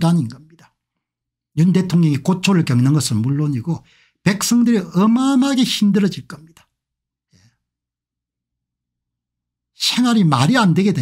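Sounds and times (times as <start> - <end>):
man inhaling sharply: 3.9 - 4.2.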